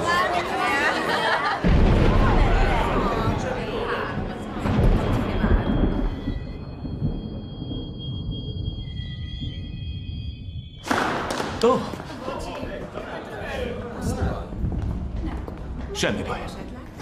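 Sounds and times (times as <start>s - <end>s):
voices: 0.0s - 6.2s.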